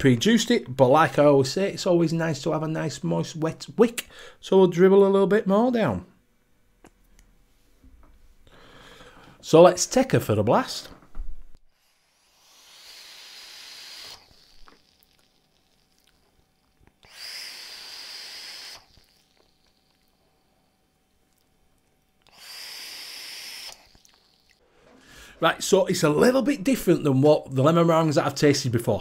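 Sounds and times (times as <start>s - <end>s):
hissing vape draws: 11.7s - 16.2s, 17.0s - 20.2s, 22.2s - 25.4s.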